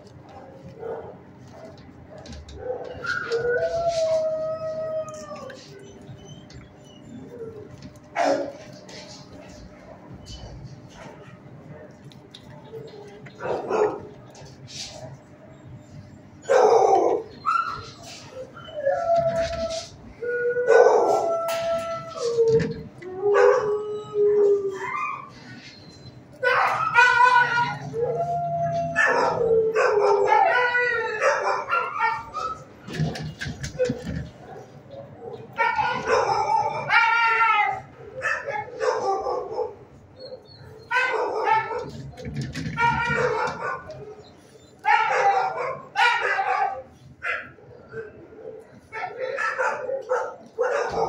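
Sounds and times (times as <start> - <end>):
dog howling: 2.2 - 9.6, 16.4 - 32.8, 33.6 - 51.0.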